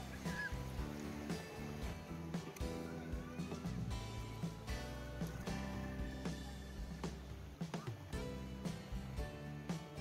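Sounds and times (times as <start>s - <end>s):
background music of low notes: 0.0s - 10.0s.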